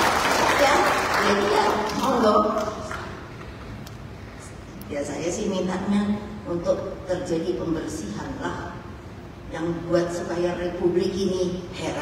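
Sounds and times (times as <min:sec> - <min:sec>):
audience applauding: 0:00.0 - 0:02.3
woman speaking: 0:00.4 - 0:03.0, 0:04.8 - 0:08.9, 0:09.5 - 0:12.0.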